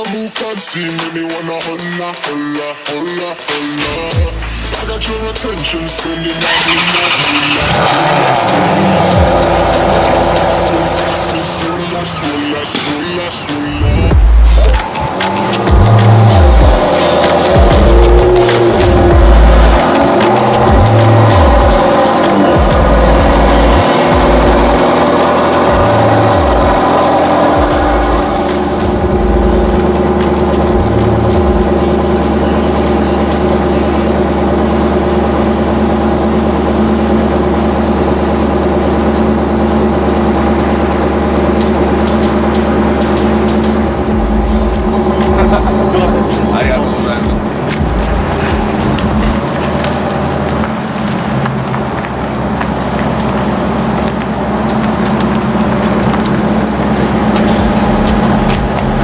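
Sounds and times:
music with heavy bass beat: 0:00.0 - 0:59.0
car engine idling: 0:03.8 - 0:59.0.

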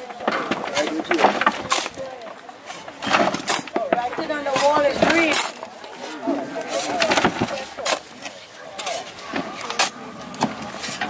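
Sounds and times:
faint voices: 0:00.0 - 0:11.0
shovel scraping into soil: 0:04.3 - 0:10.0.

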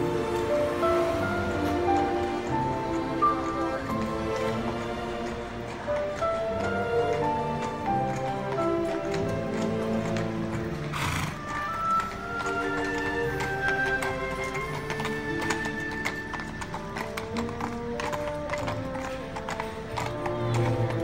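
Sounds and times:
hooves clip-clopping on pavement: 0:00.0 - 0:21.0
music: 0:00.0 - 0:21.0.

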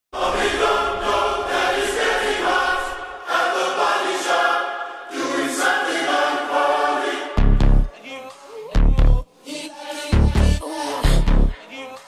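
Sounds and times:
choir-like voices chanting: 0:00.1 - 0:12.0.

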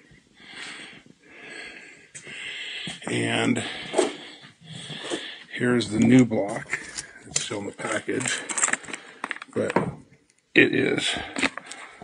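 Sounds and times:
man breathing into microphone: 0:00.4 - 0:05.6.

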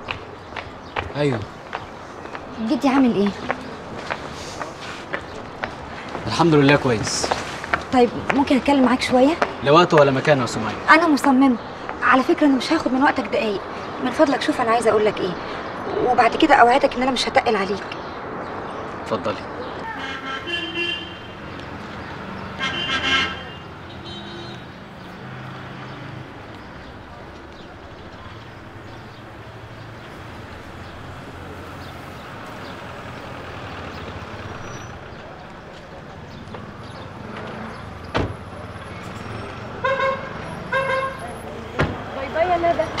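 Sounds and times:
vehicle horns tooting: 0:19.8 - 0:21.5, 0:22.4 - 0:24.8, 0:39.1 - 0:41.4.

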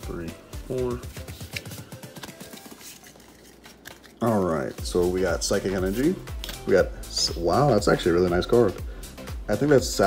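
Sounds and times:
trading cards sliding: 0:01.1 - 0:04.5
soft card clicks: 0:01.2 - 0:04.3, 0:06.4 - 0:06.7.

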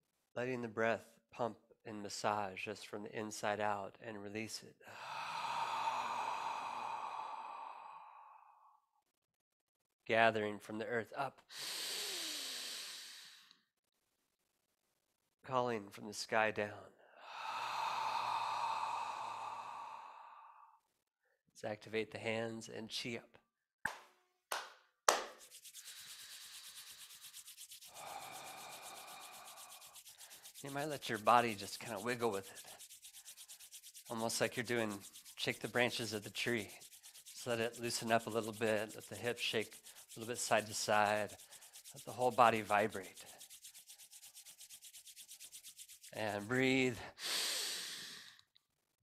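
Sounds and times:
man exhaling slowly: 0:04.9 - 0:08.8, 0:11.5 - 0:13.5, 0:17.2 - 0:20.8, 0:27.8 - 0:30.6, 0:47.0 - 0:48.4
hands clapping: 0:23.8 - 0:25.6
palms rubbing together: 0:25.1 - 0:46.7.

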